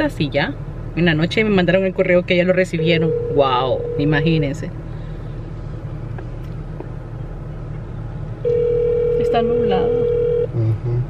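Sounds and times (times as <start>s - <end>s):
car cabin hum: 0.0s - 11.0s
phone ringback tone: 2.8s - 4.3s, 8.5s - 10.5s.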